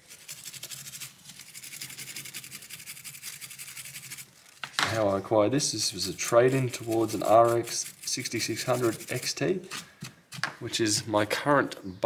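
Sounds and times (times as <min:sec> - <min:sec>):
toothbrush scrubbing: 0:00.0 - 0:04.3, 0:05.8 - 0:09.9.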